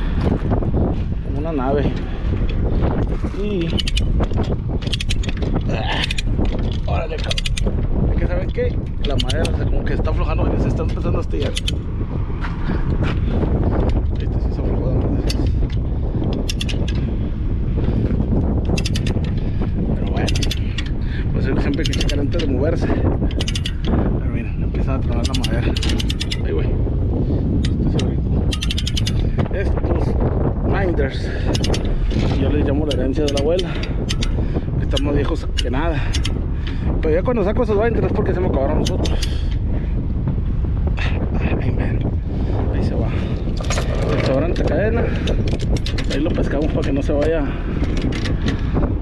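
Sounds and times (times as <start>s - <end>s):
low rumble: 0.0s - 49.0s
metal ratchet clicks: 3.5s - 7.7s, 8.5s - 9.6s, 10.9s - 11.8s, 16.3s - 17.0s, 18.6s - 19.4s, 20.2s - 21.0s, 21.6s - 22.5s, 23.2s - 24.0s, 25.1s - 26.4s, 27.6s - 29.3s, 31.5s - 36.4s, 38.8s - 39.5s, 43.6s - 48.6s.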